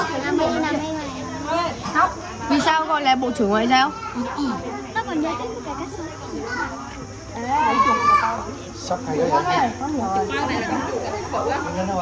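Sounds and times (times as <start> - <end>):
chatter of children and adults: 0.0 - 12.0
high-pitched children's voices: 3.7 - 8.6.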